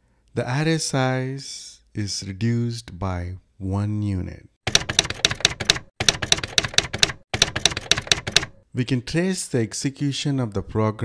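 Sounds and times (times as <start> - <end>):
typewriter-like keystroke clicks: 4.7 - 8.6.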